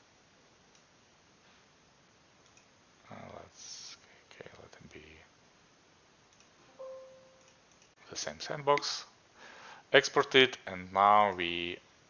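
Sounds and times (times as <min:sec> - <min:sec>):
computer warning chime: 0:06.7 - 0:07.5.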